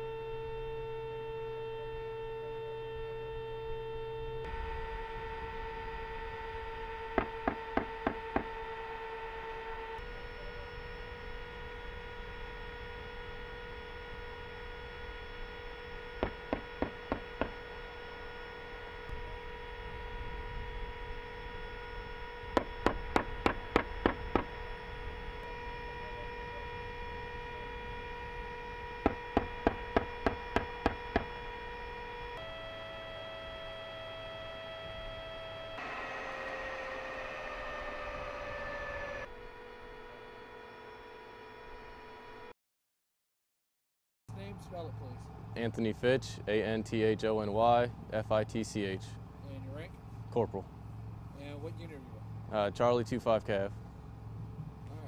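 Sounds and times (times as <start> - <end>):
steady hum: 0.0 - 42.5, 44.3 - 55.0.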